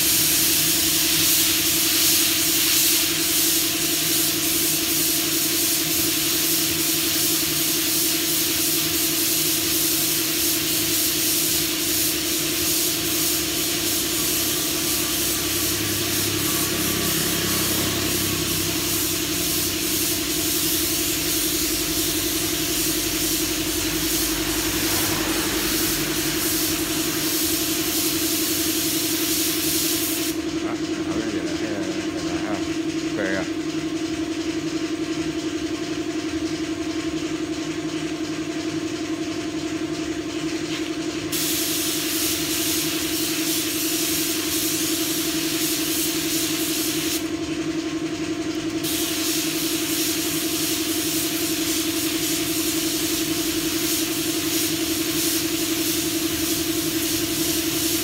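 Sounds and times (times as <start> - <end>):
spray gun hissing: 0.0 - 32.3, 41.2 - 47.4, 48.8 - 58.0
low hum: 22.2 - 28.0.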